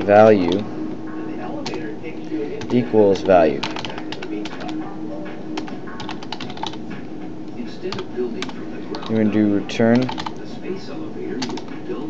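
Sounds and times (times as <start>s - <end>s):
faint low hum: 0.0s - 12.0s
computer keyboard typing: 1.6s - 1.8s, 2.5s - 4.8s, 5.6s - 6.8s, 7.9s - 9.3s, 9.9s - 10.4s, 11.4s - 11.7s.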